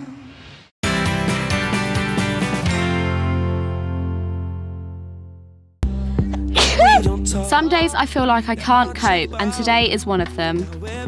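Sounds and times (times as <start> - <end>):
background music: 0.8 - 11.0
woman sneezing: 6.5 - 7.1.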